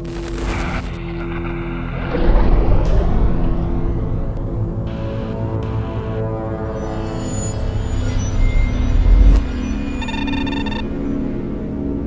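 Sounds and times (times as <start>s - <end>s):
eerie music with low drone: 0.0s - 12.0s
deep rumbling boom: 0.4s - 5.2s.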